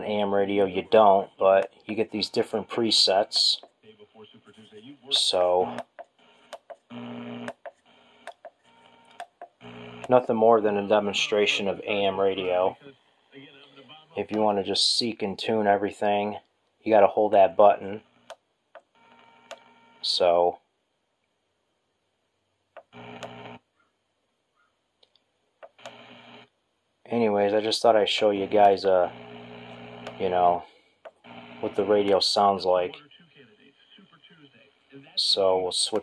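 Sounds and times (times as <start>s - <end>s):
thin am radio audio: 0.0s - 9.0s, 9.6s - 14.6s, 27.3s - 30.6s, 31.3s - 36.0s.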